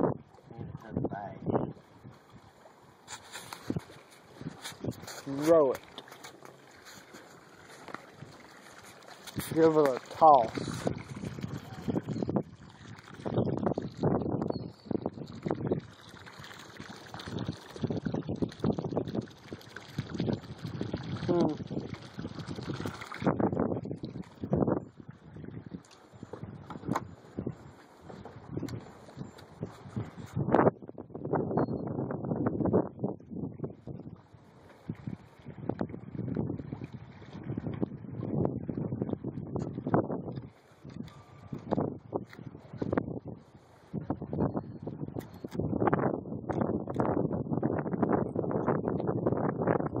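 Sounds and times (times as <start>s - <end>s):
wind on microphone: 0.0s - 50.0s.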